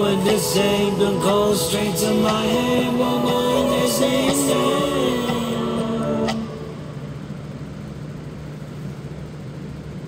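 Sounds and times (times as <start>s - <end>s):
song note held: 0.0s - 7.4s
steady low hum: 0.0s - 10.0s.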